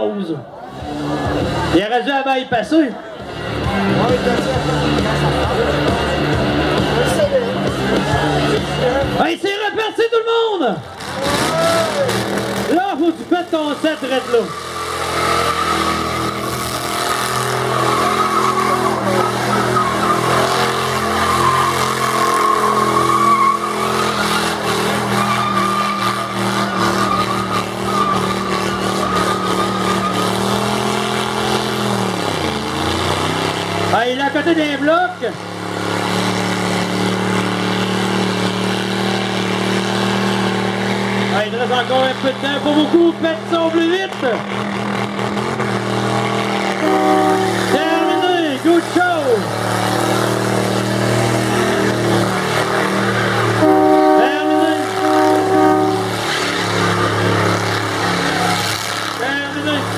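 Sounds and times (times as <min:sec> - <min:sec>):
crowd noise: 0:00.0 - 0:59.9
car engine running: 0:00.5 - 0:59.9.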